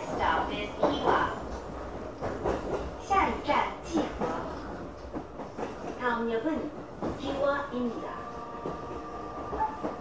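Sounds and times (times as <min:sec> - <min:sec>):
electric train running on rails: 0:00.0 - 0:10.0.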